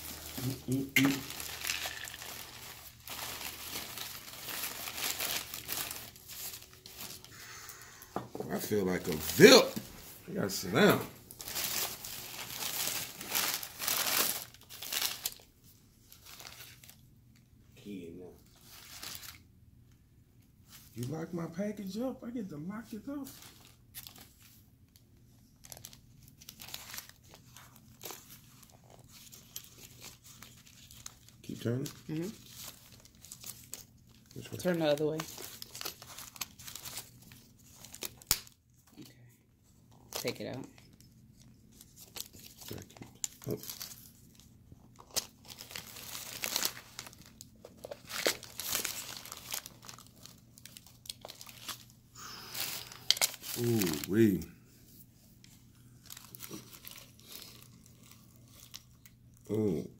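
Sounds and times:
tissue paper crinkling: 0:00.0 - 0:17.1, 0:18.4 - 0:19.5, 0:22.8 - 0:38.6, 0:39.9 - 0:59.0.

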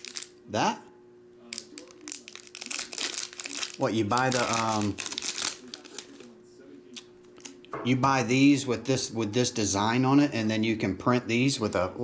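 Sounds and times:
foil wrapper crinkling: 0:00.0 - 0:00.4, 0:01.5 - 0:06.3.

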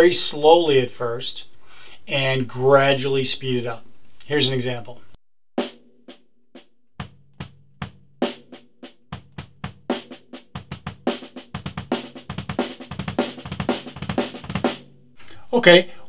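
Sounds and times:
drum kit playing: 0:05.6 - 0:15.0.

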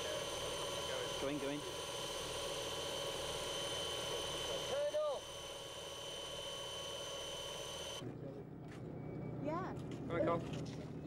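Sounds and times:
aircraft engine drone with whine: 0:00.0 - 0:08.0.

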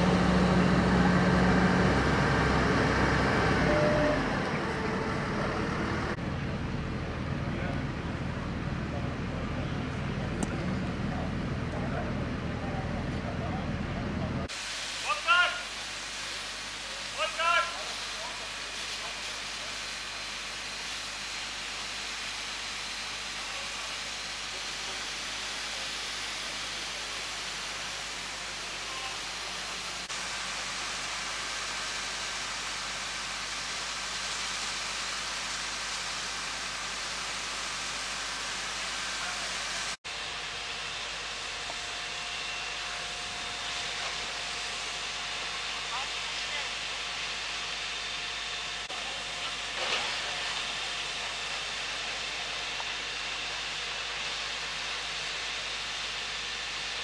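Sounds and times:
fire hose spraying water: 0:00.0 - 0:13.4, 0:14.5 - 0:57.0
fire engines running: 0:00.0 - 0:57.0
water jet spraying: 0:14.5 - 0:40.0.

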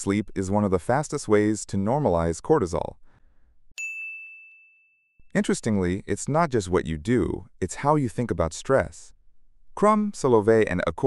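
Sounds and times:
bell-like ding: 0:03.8 - 0:05.4.

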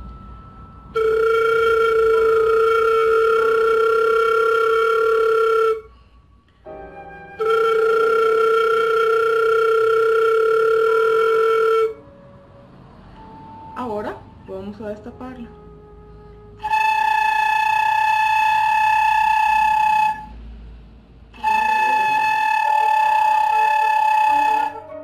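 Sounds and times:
flute headjoint flutter-tongued notes: 0:00.0 - 0:12.4, 0:15.2 - 0:20.5, 0:21.3 - 0:25.0.

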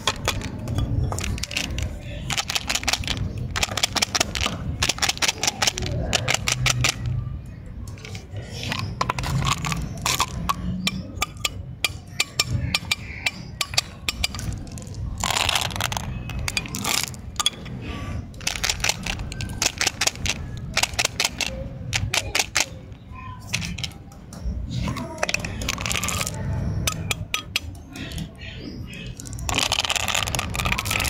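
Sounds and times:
plastic containers clicking open: 0:00.0 - 0:07.2, 0:07.9 - 0:17.5, 0:18.4 - 0:22.8, 0:24.9 - 0:28.2, 0:29.2 - 0:31.0
jelly beans rattling: 0:00.0 - 0:07.3, 0:07.9 - 0:22.9, 0:23.5 - 0:24.0, 0:24.8 - 0:28.3, 0:29.0 - 0:31.0.

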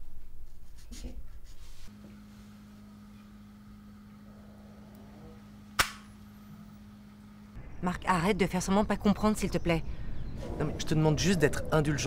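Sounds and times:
low steady hum: 0:00.1 - 0:12.0.

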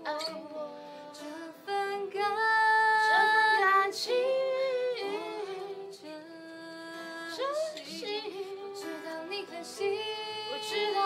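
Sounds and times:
acoustic guitars: 0:00.0 - 0:11.0
woman singing pop song: 0:00.0 - 0:11.0.

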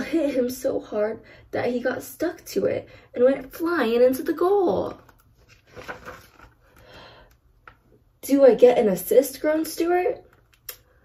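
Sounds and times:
book page turning: 0:04.9 - 0:06.8.

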